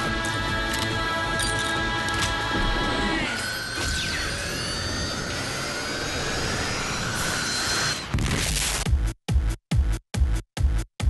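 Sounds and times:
jet turbine whine: 3.3s - 8.0s.

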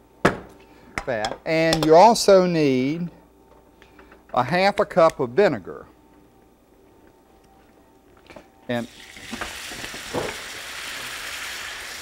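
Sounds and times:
vinegar sizzling in hot fat: 8.8s - 12.0s.

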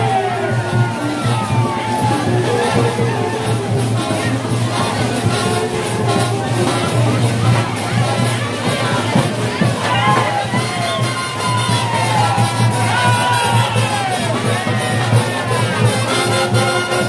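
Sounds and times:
brass band playing: 0.0s - 17.0s
crowd voices: 0.0s - 17.0s
percussion beat: 0.0s - 17.0s.

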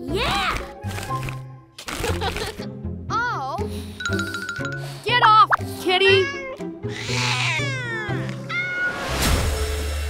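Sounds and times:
light children's music: 0.0s - 8.5s
cartoon cat meowing: 6.0s - 9.0s.

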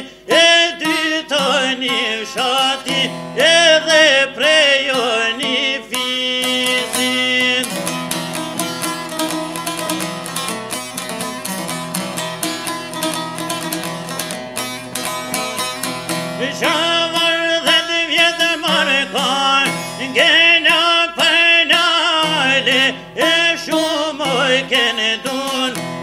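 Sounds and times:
man singing: 0.0s - 8.6s, 16.3s - 26.0s
lute picked rapidly: 0.0s - 26.0s.

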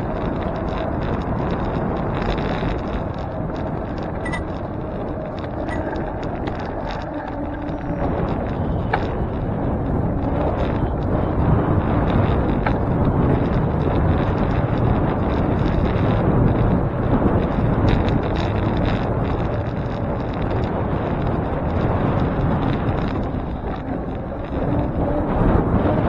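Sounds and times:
city road traffic: 0.0s - 26.0s
wind rushing over microphone: 0.0s - 26.0s.

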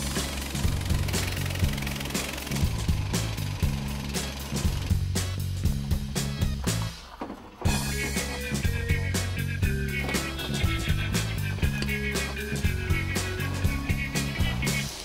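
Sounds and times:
music with steady beat and bass: 0.0s - 7.0s, 7.7s - 15.0s.

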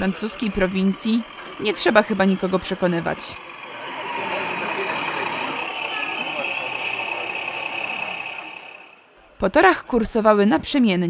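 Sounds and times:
model railcar humming: 0.0s - 9.7s
chatter of many voices: 0.0s - 11.0s.

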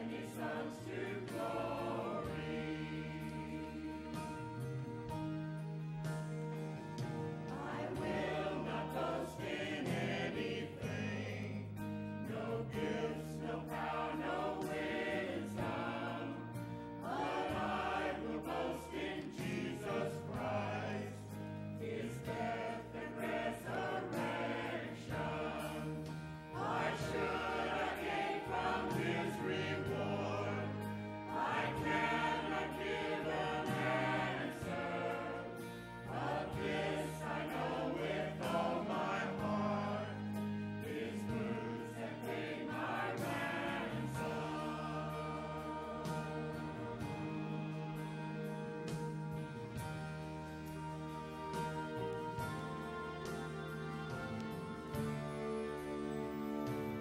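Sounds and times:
church choir singing: 0.0s - 57.0s.

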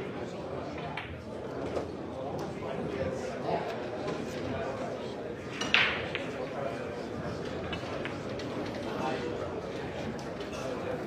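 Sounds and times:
crowd murmur: 0.0s - 11.0s
pool balls clacking: 5.5s - 6.5s, 7.3s - 8.9s.

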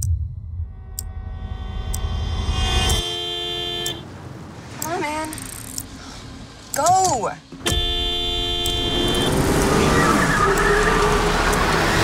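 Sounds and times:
low rumble: 0.0s - 3.0s
car horn blast: 2.4s - 4.1s, 7.6s - 9.4s.

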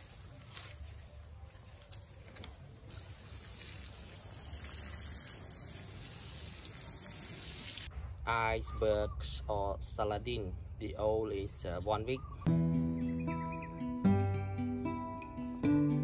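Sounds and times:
grass mulch rustling onto soil: 0.0s - 7.9s
water poured over mulch: 0.0s - 7.9s.

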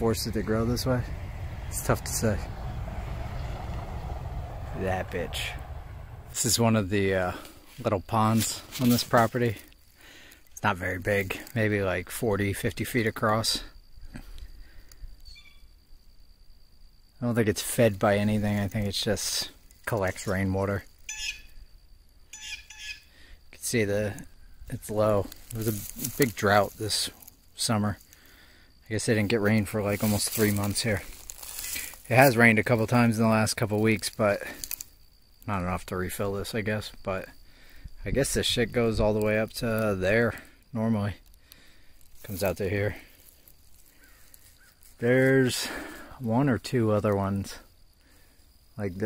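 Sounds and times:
faint distant bird calls: 43.0s - 45.0s.

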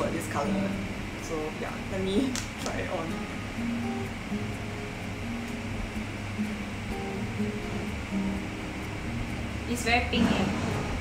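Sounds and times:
plucked string melody: 0.0s - 11.0s.

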